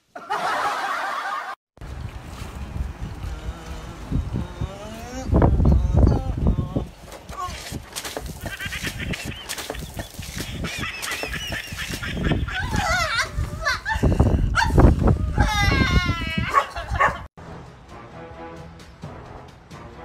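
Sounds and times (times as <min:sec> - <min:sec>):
shrill wavering cries: 0:14.6 - 0:16.8.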